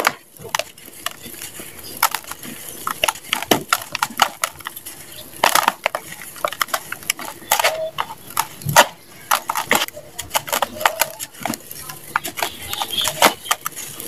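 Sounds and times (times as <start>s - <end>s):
crunchy sand crumbling by hand: 0.0s - 14.0s.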